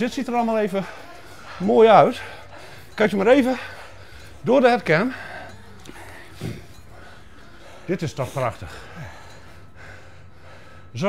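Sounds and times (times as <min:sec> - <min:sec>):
runner breathing hard: 0:00.0 - 0:11.0.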